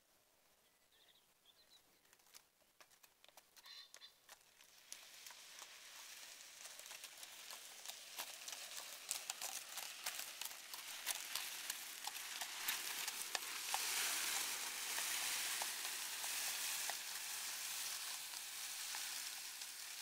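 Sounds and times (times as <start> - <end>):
bag dragged along gravel: 4.4 - 20.0.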